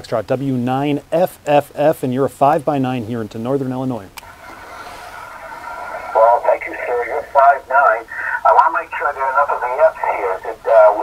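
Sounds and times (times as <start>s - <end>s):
faint radio band hiss: 0.0s - 11.0s
narrow-band radio speech: 6.0s - 11.0s.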